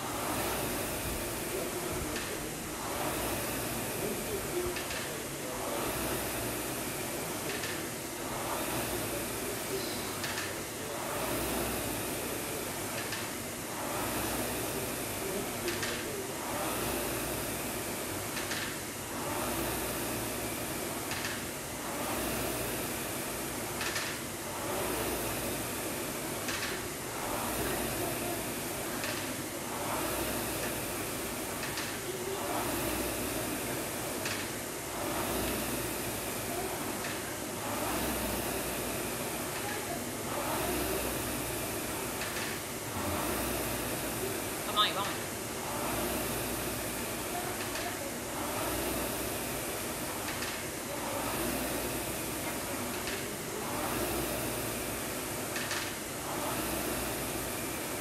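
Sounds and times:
rowing machine flywheel whooshing: 0:00.0 - 0:58.0.

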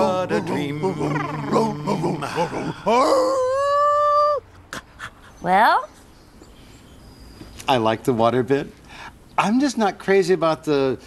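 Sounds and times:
person howling like a dog: 0:00.3 - 0:04.4.

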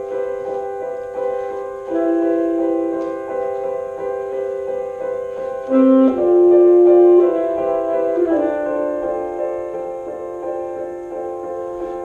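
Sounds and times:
grand piano: 0:00.0 - 0:12.0
saxophone: 0:01.2 - 0:10.2.

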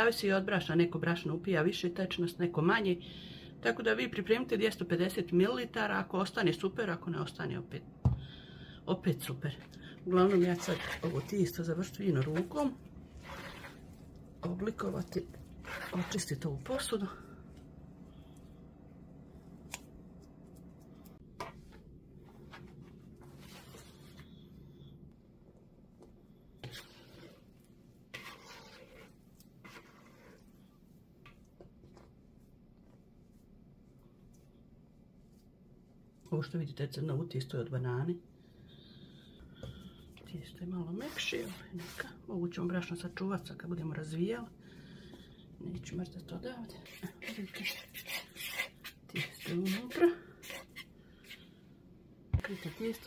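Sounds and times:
low room hum: 0:00.0 - 0:53.0
woman speaking: 0:03.6 - 0:07.9, 0:08.8 - 0:12.9, 0:14.4 - 0:17.4, 0:36.3 - 0:38.2, 0:40.2 - 0:44.6, 0:45.6 - 0:48.2, 0:49.1 - 0:50.4, 0:52.4 - 0:53.0
hands kneading dough: 0:09.2 - 0:24.5, 0:25.4 - 0:36.6, 0:39.4 - 0:51.4, 0:52.3 - 0:53.0.

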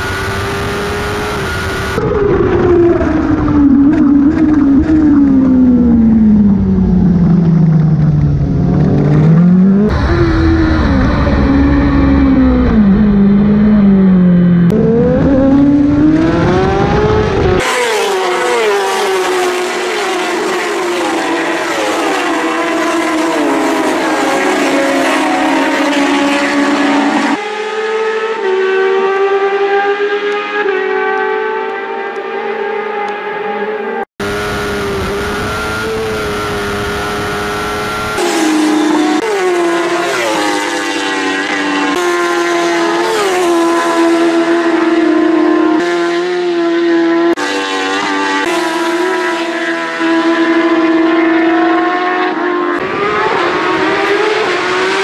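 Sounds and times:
motorcycles racing at full throttle: 0:00.0 - 0:55.0.

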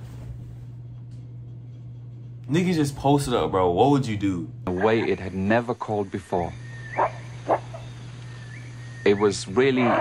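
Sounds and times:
low hum: 0:00.0 - 0:10.0
gorilla calls: 0:06.7 - 0:10.0.

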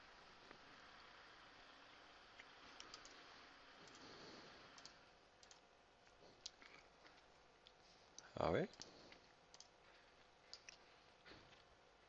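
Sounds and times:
low hiss: 0:00.0 - 0:12.0
computer mouse clicks: 0:02.4 - 0:03.2, 0:03.8 - 0:04.1, 0:04.7 - 0:05.7, 0:07.6 - 0:09.8, 0:10.5 - 0:10.8.

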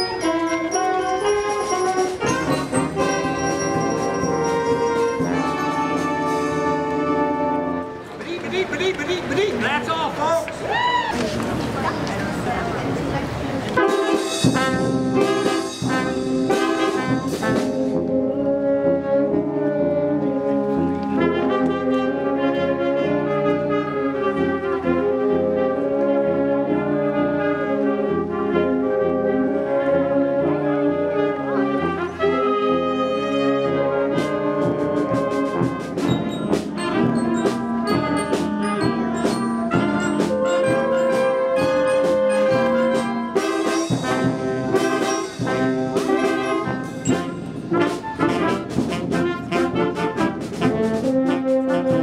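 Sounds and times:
concert band brass chords: 0:00.0 - 0:10.2, 0:13.7 - 0:52.0.

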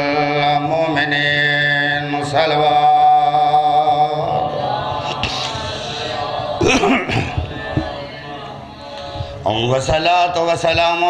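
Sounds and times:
man chanting amplified: 0:00.0 - 0:11.0.

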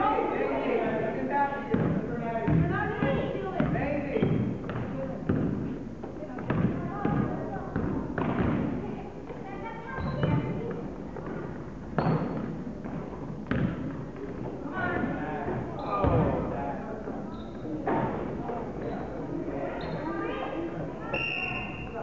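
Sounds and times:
basketball bouncing on wooden floor: 0:01.7 - 0:05.6, 0:06.4 - 0:08.7, 0:11.2 - 0:14.0.

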